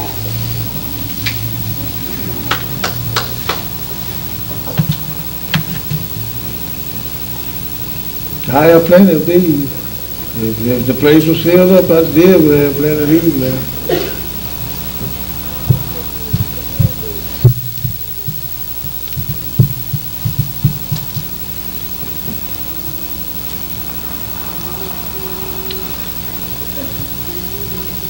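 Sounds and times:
electrical hum from sound system: 0.0 - 28.0
microphone handling thumps: 4.4 - 6.5, 14.8 - 22.5.

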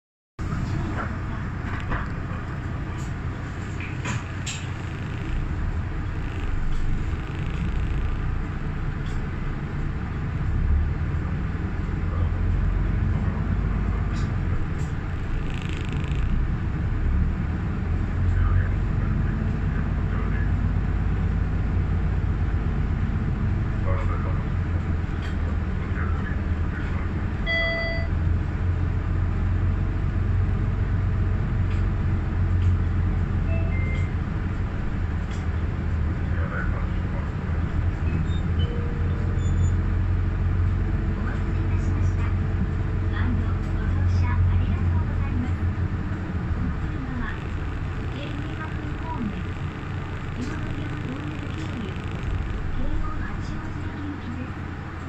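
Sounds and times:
bus engine and road rumble: 0.4 - 55.0
short electronic beep: 27.5 - 28.1.

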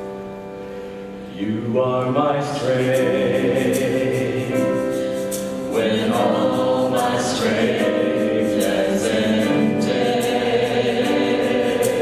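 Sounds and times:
worship band playing: 0.0 - 12.0
choir singing gospel: 1.3 - 12.0.

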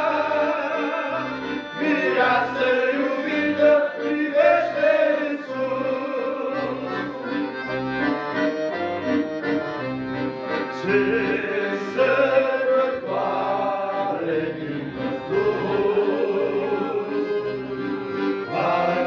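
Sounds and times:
men singing in harmony: 0.0 - 6.9, 10.8 - 17.6, 18.4 - 19.0
accordion playing slow tune: 0.0 - 19.0.

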